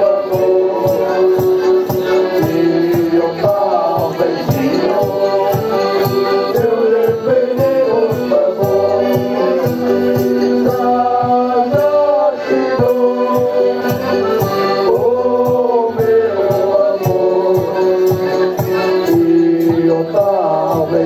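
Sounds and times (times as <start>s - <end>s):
strummed stringed instruments: 0.0s - 21.0s
voices singing together: 0.0s - 21.0s.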